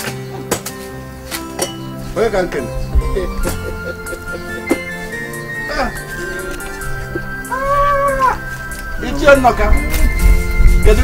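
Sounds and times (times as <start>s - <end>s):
background music with held notes: 0.0s - 11.0s
drawn-out high call: 5.0s - 10.2s.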